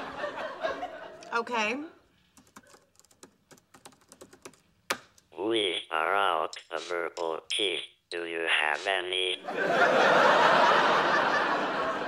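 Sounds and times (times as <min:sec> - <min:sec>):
laptop keyboard typing: 0:02.3 - 0:05.2.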